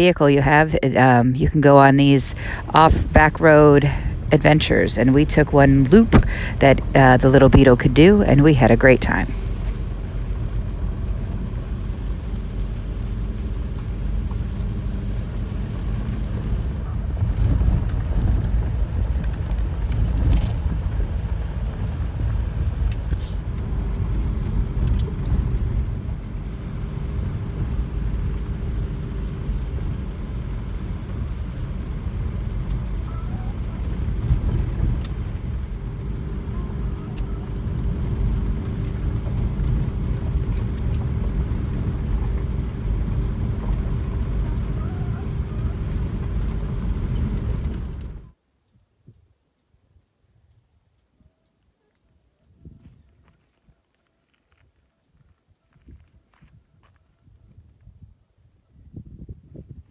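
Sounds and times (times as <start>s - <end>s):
car engine and tyre rumble: 0.0s - 48.5s, 49.6s - 59.9s.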